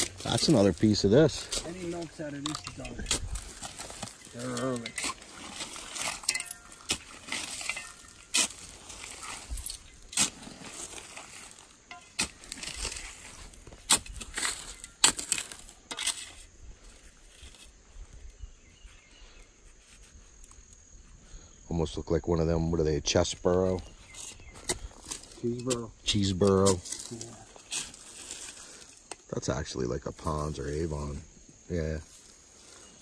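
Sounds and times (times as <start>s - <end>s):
scraping and sifting soil: 0.0s - 18.0s, 23.5s - 29.1s
pick striking soil with glass clinks: 6.0s - 8.5s.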